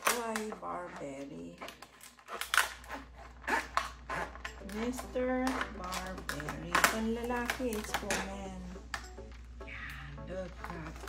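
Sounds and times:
scissors cutting plastic: 0:00.0 - 0:09.2.

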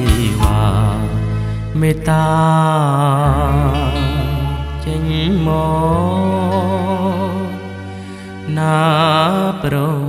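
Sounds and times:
pop backing band with bass: 0:00.0 - 0:09.7
person singing with vibrato: 0:00.0 - 0:10.0.

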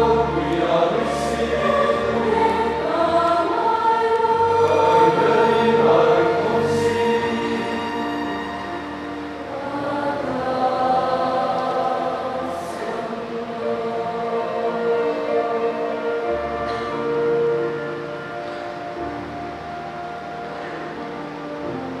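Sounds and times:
congregation singing: 0:00.0 - 0:22.0.

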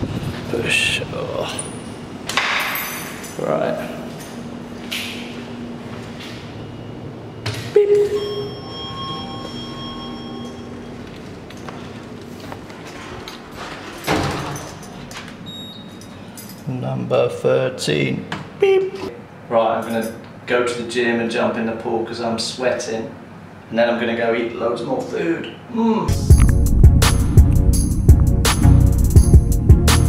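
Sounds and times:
steady ringing tone: 0:06.5 - 0:11.2
lift doors sliding: 0:07.4 - 0:16.4.

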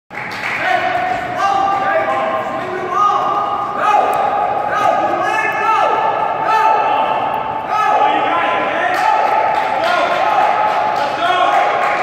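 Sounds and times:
players' voices: 0:00.3 - 0:12.0.

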